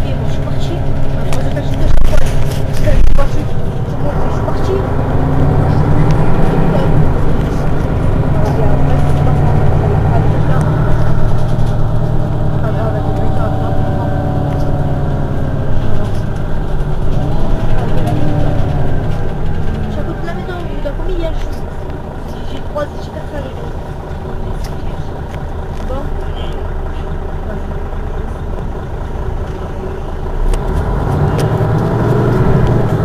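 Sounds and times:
bus engine idling: 0.0s - 33.0s.

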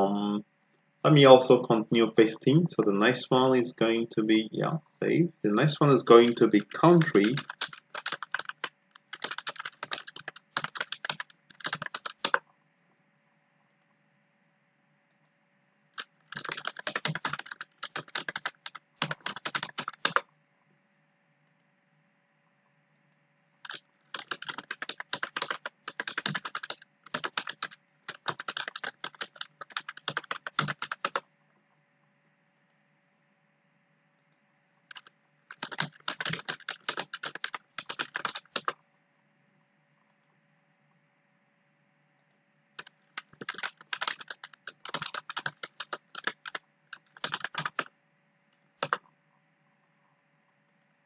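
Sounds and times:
fast keyboard typing: 6.6s - 12.4s, 16.0s - 20.3s, 23.6s - 31.2s, 34.9s - 38.8s, 42.8s - 47.9s, 48.8s - 49.1s.

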